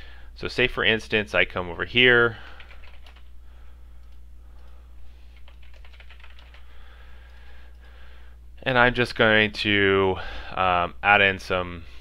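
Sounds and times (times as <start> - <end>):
low electrical hum: 0.0 - 12.0
keyboard typing: 2.6 - 3.3, 4.0 - 6.7.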